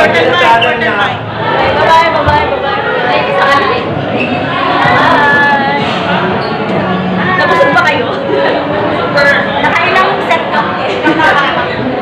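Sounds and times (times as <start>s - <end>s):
crowded room noise: 0.0s - 12.0s
people talking close by: 0.0s - 12.0s.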